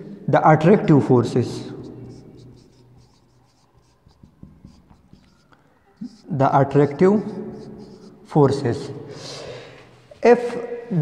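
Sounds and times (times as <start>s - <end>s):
marker pen writing on whiteboard: 0.9s - 9.1s.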